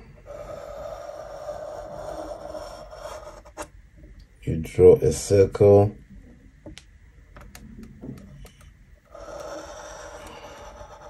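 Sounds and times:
pencil scratching on paper: 0.0 - 3.7, 9.1 - 11.0.

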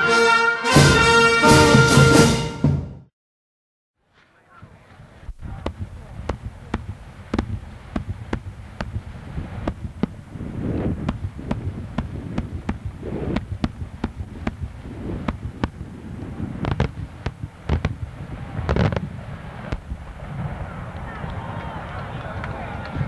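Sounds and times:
fireworks bangs: 4.1 - 23.0.

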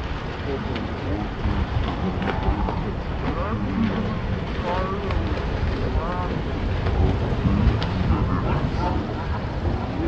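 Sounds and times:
indistinct voices: 0.0 - 10.0
wind noise on microphone: 0.0 - 10.0.

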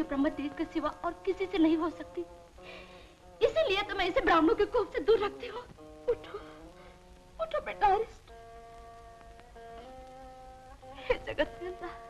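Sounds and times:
woman weeping cries: 11.0 - 12.0.

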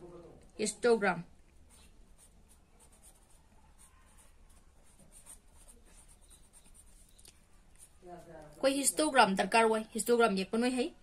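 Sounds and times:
felt-tip marker writing on paper: 1.6 - 8.3.

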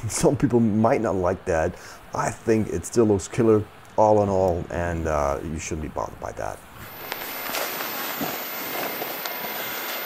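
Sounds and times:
background noise: 0.0 - 10.0
camera handling rustling: 6.9 - 10.0.

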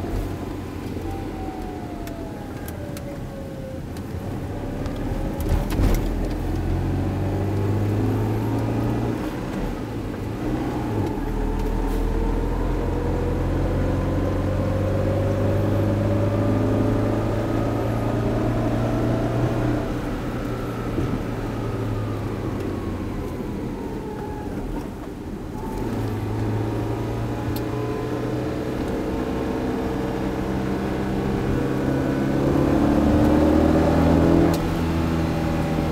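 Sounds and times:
car engine rising and falling: 0.0 - 35.9
tyre and road noise: 0.0 - 35.9.

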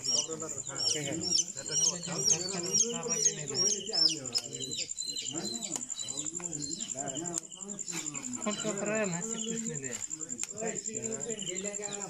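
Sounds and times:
bird chirping: 0.0 - 12.0
insect trill: 0.0 - 12.0
people talking: 0.0 - 12.0.

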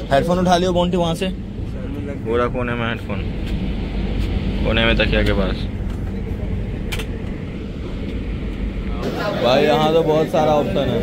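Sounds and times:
train coach rumble: 0.0 - 11.0.

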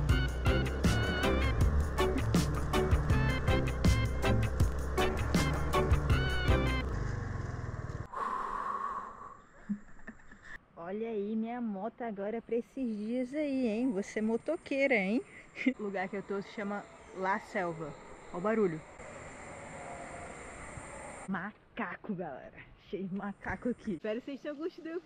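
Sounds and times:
scooter engine idling: 0.0 - 8.1
steady mid-pitched hum: 13.6 - 21.3
distant monkeys screaming: 14.2 - 21.3.

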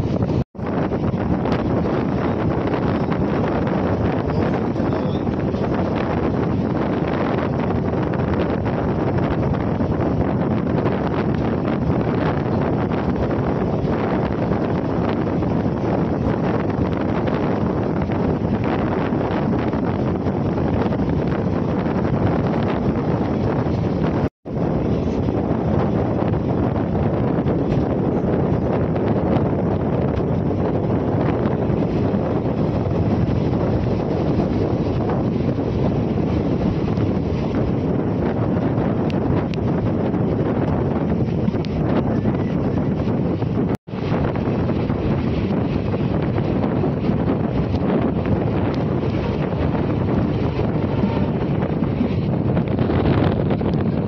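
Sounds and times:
moving passenger train: 0.0 - 54.0
wind buffeting microphone: 0.0 - 54.0.

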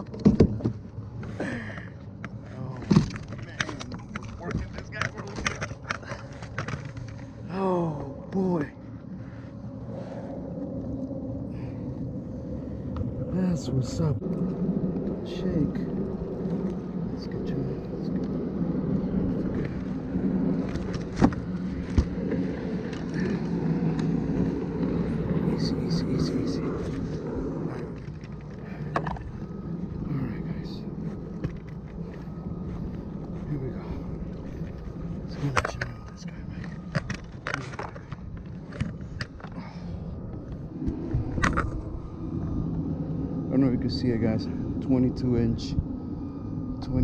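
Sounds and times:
steady low rumble: 0.0 - 47.0.

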